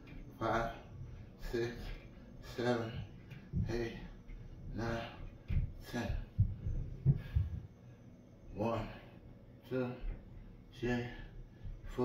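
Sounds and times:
soft low thumps: 0:00.0 - 0:07.8, 0:10.0 - 0:12.0.

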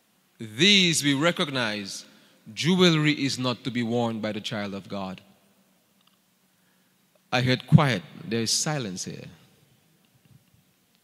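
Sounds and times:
man speaking into a microphone: 0:00.4 - 0:05.3, 0:07.3 - 0:09.6.

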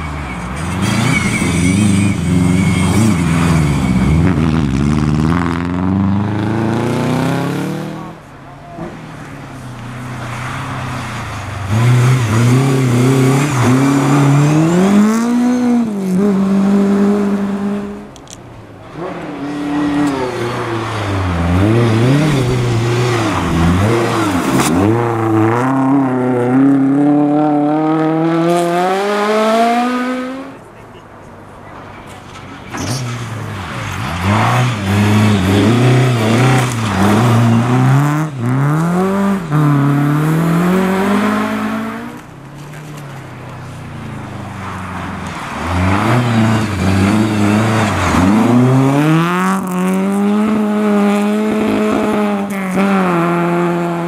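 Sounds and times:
rally car engines revving: 0:00.0 - 0:54.0.

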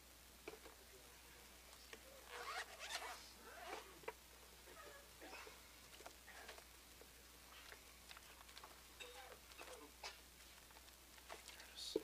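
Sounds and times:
faint zipper being pulled: 0:02.2 - 0:04.0.

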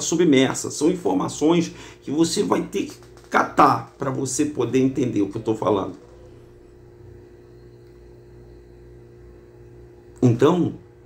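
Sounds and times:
low room hum: 0:00.0 - 0:11.0
faint steady tones: 0:03.8 - 0:11.0.

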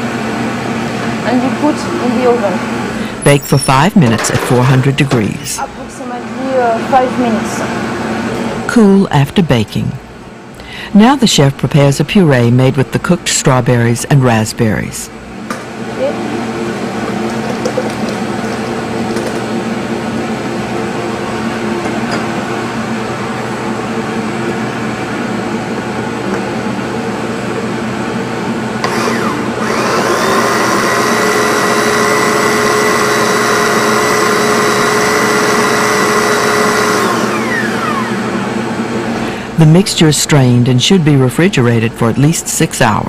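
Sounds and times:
blender running: 0:03.0 - 0:05.6, 0:16.0 - 0:19.5, 0:28.8 - 0:39.4.

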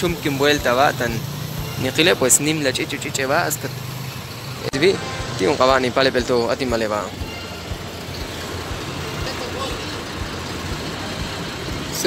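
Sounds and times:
idling truck engine hum: 0:00.0 - 0:12.0.

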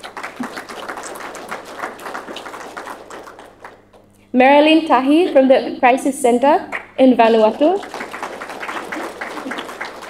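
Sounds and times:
audience applauding: 0:00.0 - 0:04.1, 0:06.7 - 0:10.0.

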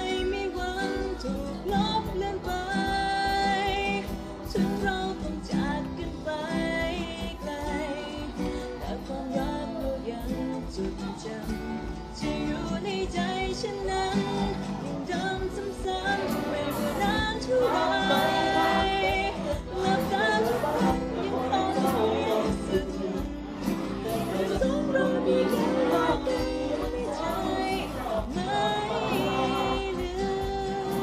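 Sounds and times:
electric guitar: 0:00.0 - 0:31.0
live band with singing: 0:00.0 - 0:31.0.

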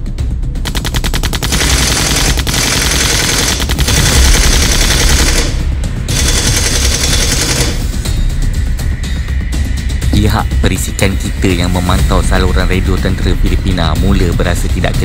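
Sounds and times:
background music with low bass: 0:00.0 - 0:15.0
automatic gunfire: 0:00.6 - 0:07.8.

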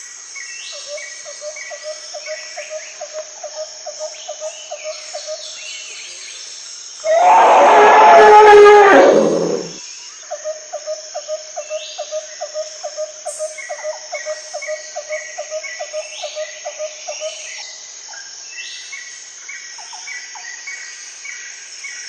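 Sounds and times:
elephant trumpeting: 0:07.1 - 0:09.8.

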